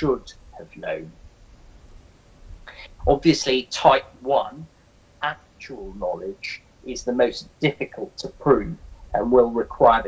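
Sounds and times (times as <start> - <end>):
man speaking: 0.0 - 1.1, 2.7 - 10.0
faint background noise: 0.0 - 10.0.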